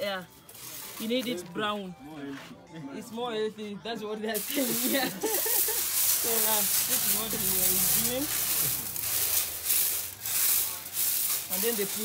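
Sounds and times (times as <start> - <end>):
dry kernels rattling in metal tray: 4.4 - 12.0.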